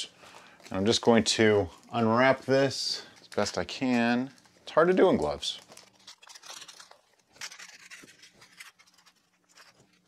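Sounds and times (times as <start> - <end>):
foil and paper crinkling: 0.2 - 10.0.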